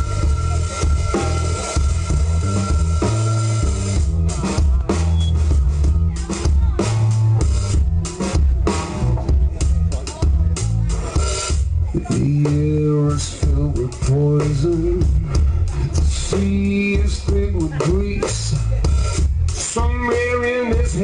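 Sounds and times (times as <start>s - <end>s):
bass guitar: 0.0s - 21.0s
drums: 0.0s - 21.0s.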